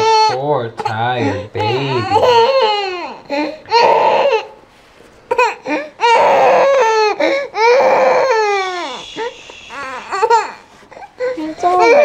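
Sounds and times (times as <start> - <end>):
toddler crying: 0.0 - 4.6, 5.3 - 12.0.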